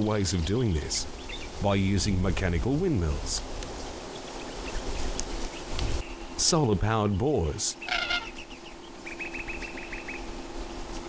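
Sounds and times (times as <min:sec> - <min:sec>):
steady low hum: 0:00.0 - 0:11.0
bird rapid trill: 0:07.8 - 0:10.4.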